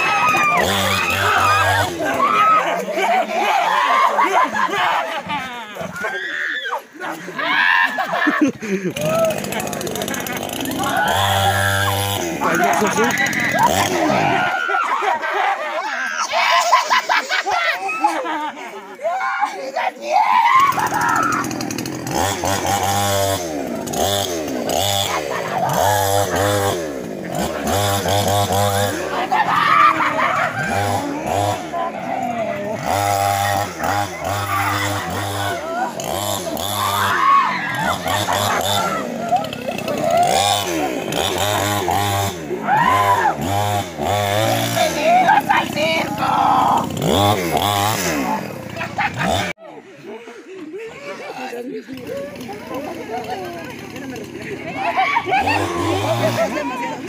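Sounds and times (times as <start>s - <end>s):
chainsaw revving: 0.0s - 6.2s, 6.8s - 18.2s, 20.3s - 49.6s, 51.4s - 57.0s.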